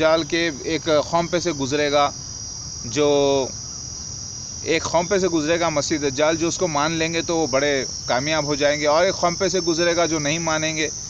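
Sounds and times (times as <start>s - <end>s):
man talking: 0.0s - 2.1s, 2.8s - 3.6s, 4.6s - 11.0s
high-pitched insect drone: 0.0s - 11.0s.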